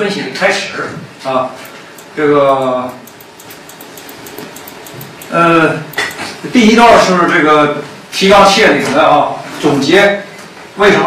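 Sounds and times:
faint high-pitched rapid ticking: 0:01.5 - 0:06.9.

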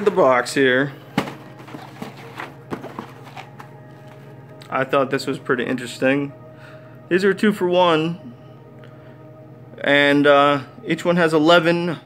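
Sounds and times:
faint steady hum: 0:00.0 - 0:12.0
cardboard boxes tapping and knocking: 0:01.1 - 0:04.2.

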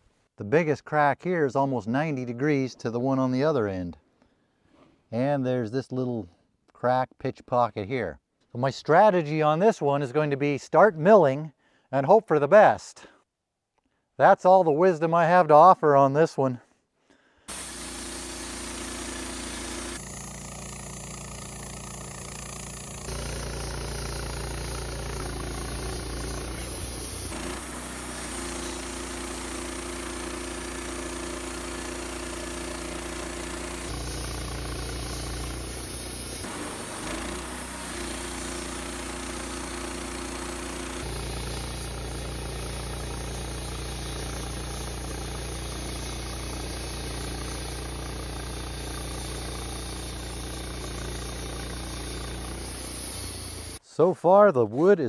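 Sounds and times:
band sawmill cutting log: 0:17.5 - 0:53.8.

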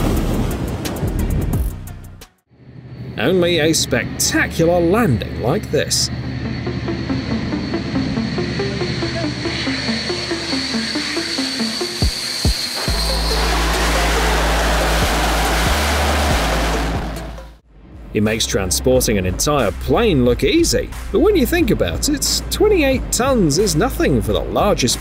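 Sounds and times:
jet roar: 0:02.6 - 0:17.6
background music: 0:06.3 - 0:25.0.

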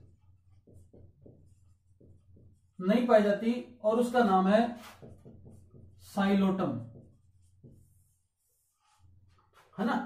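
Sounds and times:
marker on whiteboard: 0:00.0 - 0:10.0.

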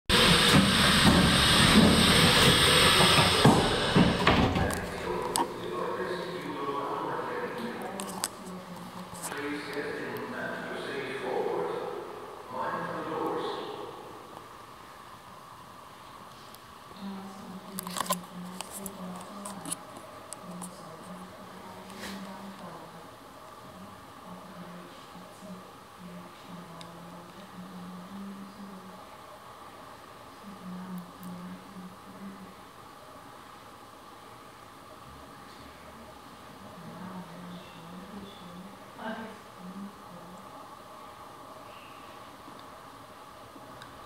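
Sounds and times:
loud steady hiss: 0:00.1 - 0:07.9
low electrical hum: 0:00.1 - 0:44.0.

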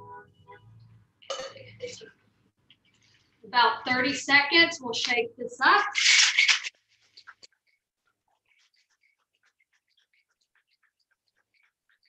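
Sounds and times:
ice rattling in cocktail shaker: 0:06.0 - 0:06.7.

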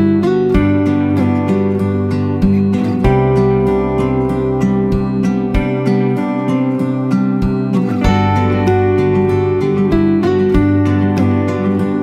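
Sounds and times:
plucked string instrumental music: 0:00.0 - 0:12.0.

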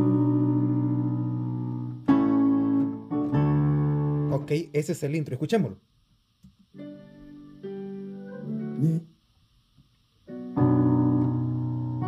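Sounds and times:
digital piano chords: 0:00.0 - 0:05.0, 0:06.8 - 0:09.0, 0:10.3 - 0:12.0.

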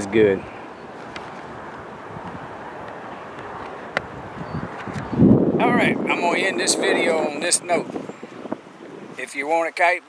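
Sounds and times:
outdoor background rush: 0:00.0 - 0:10.0.

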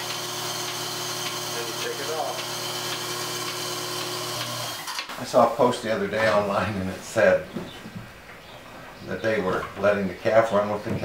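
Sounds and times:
vacuum pump motor hum: 0:00.0 - 0:05.0.

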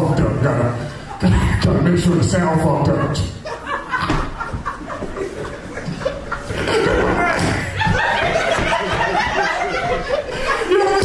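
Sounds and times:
audience chuckling and laughing: 0:02.6 - 0:11.0.

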